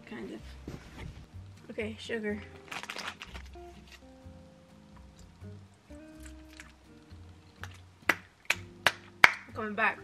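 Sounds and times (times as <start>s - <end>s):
soft background music: 0.0s - 10.0s
sharp hand claps: 8.1s - 9.6s.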